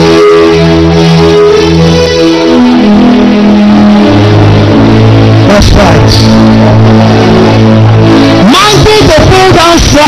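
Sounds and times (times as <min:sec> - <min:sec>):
church band playing held chords: 0:00.0 - 0:09.9
deep bass note: 0:02.4 - 0:10.0.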